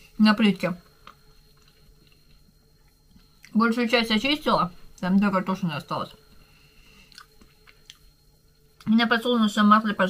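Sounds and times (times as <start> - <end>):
wet mouth clicks: 7.1 - 8.0
chewing food: 7.1 - 8.1.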